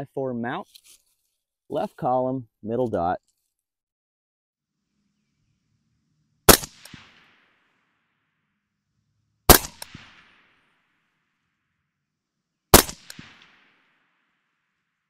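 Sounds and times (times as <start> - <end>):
suppressed rifle shots: 6.4 - 7.8, 9.5 - 10.8, 12.7 - 14.0
short gunshot echo: 9.5 - 10.6, 12.7 - 13.8.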